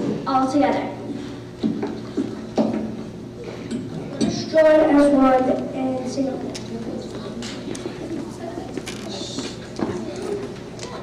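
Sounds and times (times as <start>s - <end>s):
murmur of children's voices: 3.4s - 11.0s.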